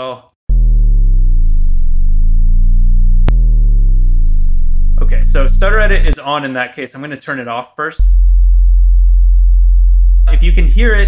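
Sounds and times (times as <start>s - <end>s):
low sub-bass sine tone: 0.5s - 6.2s, 8.0s - 11.0s.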